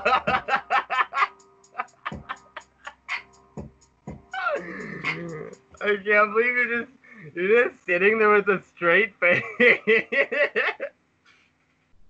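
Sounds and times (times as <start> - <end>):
men laughing: 0.0 - 3.3, 9.3 - 10.9.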